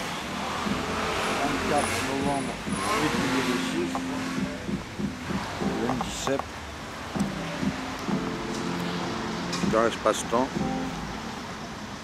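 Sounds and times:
vehicle passing on street: 0.0s - 12.0s
man's voice: 1.4s - 4.7s, 5.7s - 6.4s, 9.6s - 10.7s.

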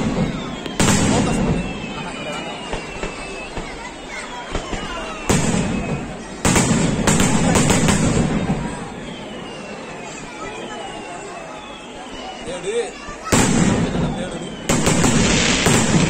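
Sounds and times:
crackling firework shower: 0.0s - 16.0s.

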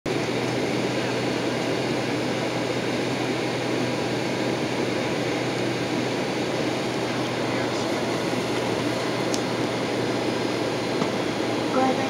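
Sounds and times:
cabin air-conditioning rush: 0.1s - 12.0s
jet engines idling: 0.1s - 12.0s.

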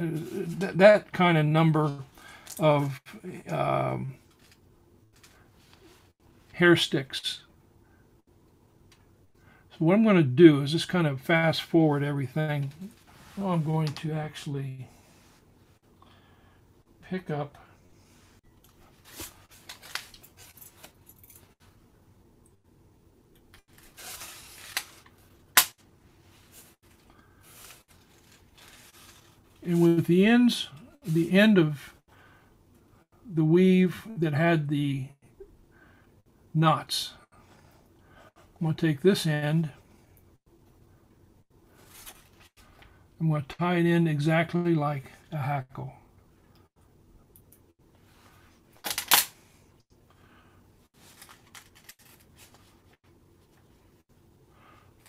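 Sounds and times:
material rustling: 26.2s - 29.6s.

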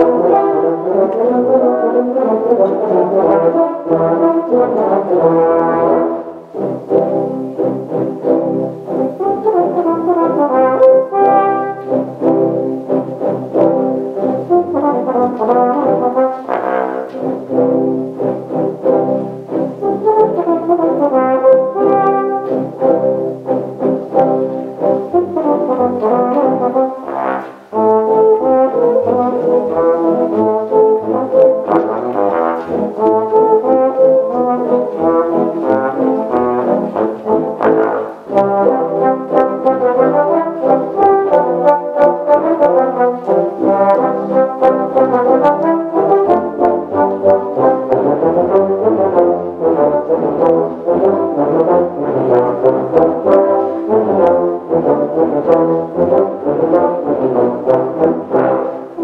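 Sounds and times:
low brass ensemble playing: 0.0s - 59.0s.

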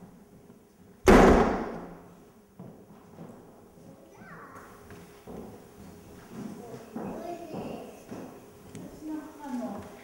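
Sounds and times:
loud ringing bang: 1.1s - 2.1s.

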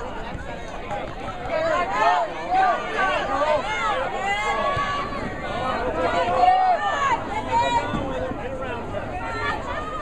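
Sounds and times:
spectators talking and calling out: 0.0s - 10.0s.

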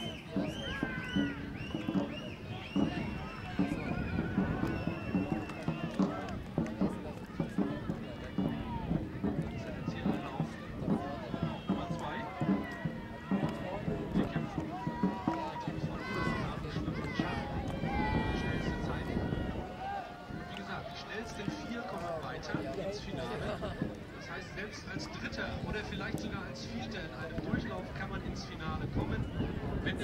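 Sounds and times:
crowd shouting and cheering: 0.0s - 30.0s.

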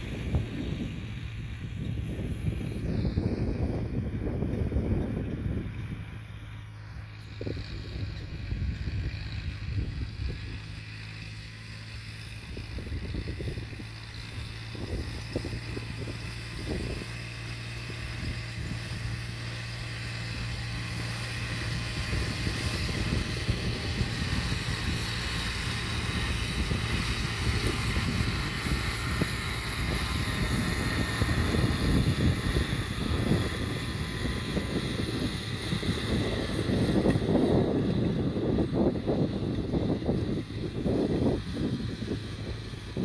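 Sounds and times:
tractor diesel engine under load: 0.0s - 43.0s.

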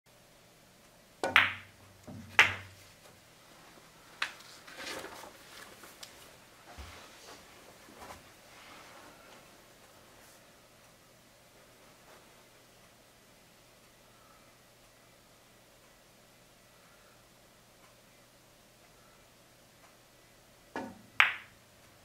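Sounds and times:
cue striking cue ball: 1.2s - 2.7s
balls rolling and knocking: 1.2s - 2.8s
billiard balls clacking: 1.2s - 2.8s, 20.8s - 21.5s.

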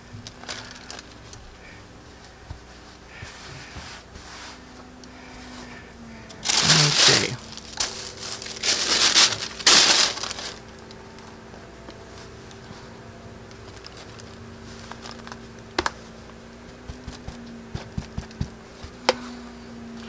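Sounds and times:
paper sheet crinkling: 0.0s - 1.7s, 6.4s - 11.3s, 11.9s - 16.1s.

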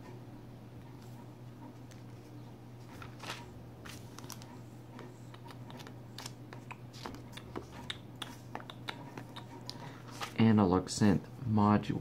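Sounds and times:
steady low hum: 0.0s - 12.0s
paper pages rustling: 1.8s - 7.7s, 9.8s - 10.4s.

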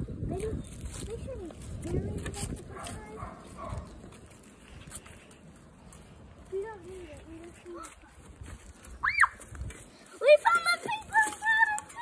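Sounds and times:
girl squealing: 9.0s - 9.4s.

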